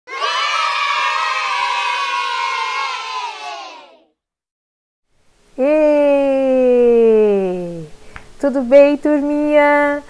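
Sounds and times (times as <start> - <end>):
children cheering and shouting: 0.1 - 4.1.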